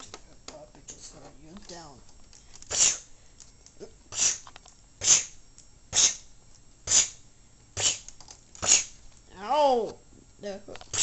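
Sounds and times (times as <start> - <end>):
person making breathy bursts: 2.7 - 3.2, 4.1 - 7.2, 7.8 - 9.0.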